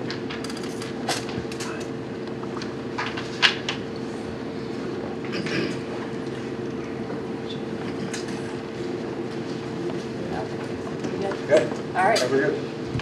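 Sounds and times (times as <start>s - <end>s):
constant hum: 0.0s - 13.0s.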